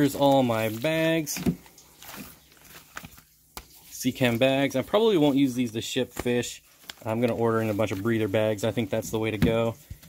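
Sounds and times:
plastic bags rustling: 0.0 - 10.0.

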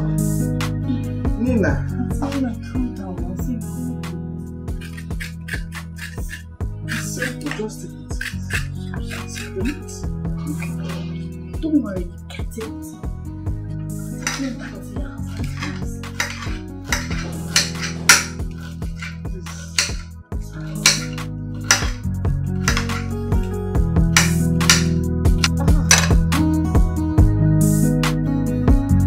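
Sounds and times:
background music with low notes: 0.0 - 29.0
kitchen knife clinking: 4.8 - 9.6, 14.2 - 23.5, 24.1 - 26.2
dishes clinking: 14.2 - 23.2, 24.2 - 26.2.

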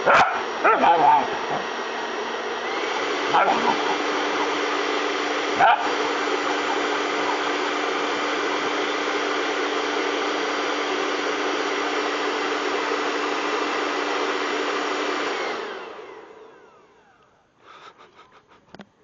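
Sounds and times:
hair dryer blowing: 0.0 - 18.4.

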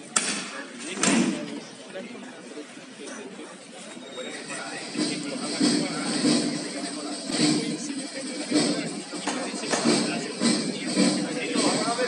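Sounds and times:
crowd voices: 0.0 - 12.0
music: 4.4 - 12.0.

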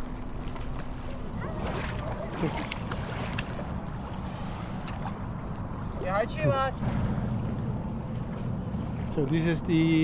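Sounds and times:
paddle splashing water: 0.0 - 10.0.

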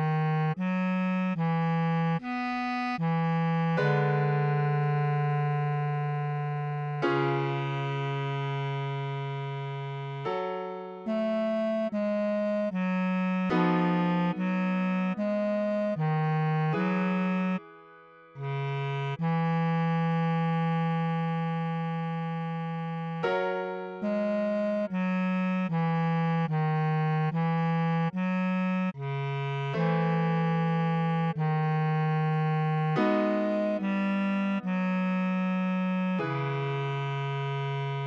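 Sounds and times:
bass clarinet long note: 0.0 - 17.6, 18.4 - 38.0.

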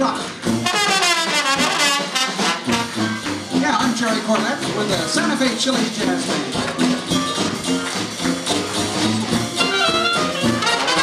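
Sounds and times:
trombone phrase in jazz band: 0.5 - 4.0, 9.6 - 11.0.

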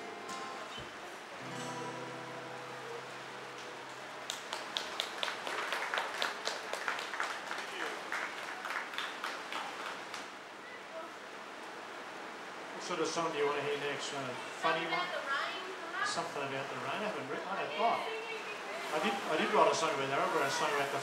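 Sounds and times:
acoustic guitar chord ringing: 0.0 - 4.3
small audience clapping: 3.6 - 10.4.

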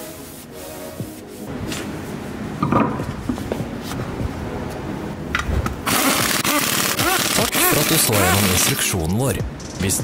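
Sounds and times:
impact wrench running: 5.9 - 7.9.

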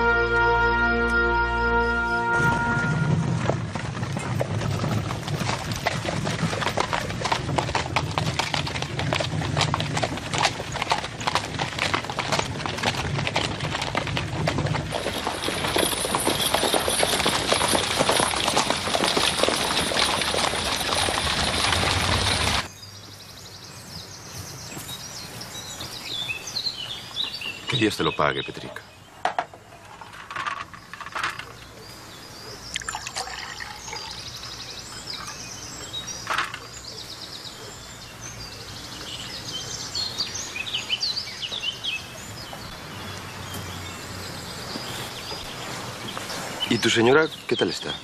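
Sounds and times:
hooves clip-clopping: 0.0 - 23.2, 32.5 - 48.0
bird chirps: 30.8 - 48.0.

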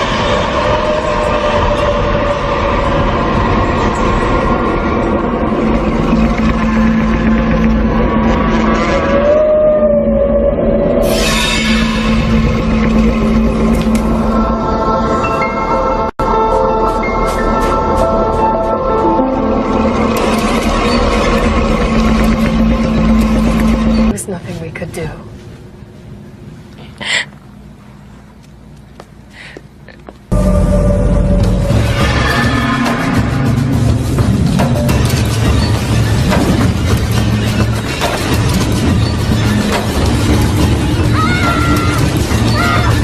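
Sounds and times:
loud rushing noise: 0.0 - 9.6, 30.3 - 43.0
dense rushing rumble: 0.0 - 15.1
held drone tones: 0.0 - 24.3, 30.3 - 43.0
low hum: 0.0 - 28.8, 30.3 - 43.0.

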